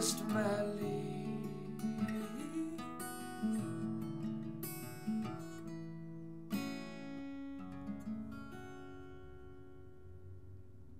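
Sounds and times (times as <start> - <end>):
acoustic guitar notes and chord: 0.0 - 10.9.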